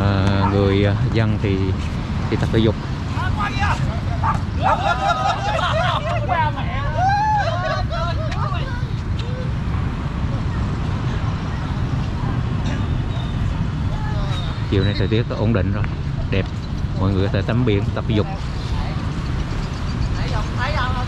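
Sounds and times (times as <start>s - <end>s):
wind rumble on microphone: 0.0s - 21.0s
people shouting: 3.2s - 9.6s.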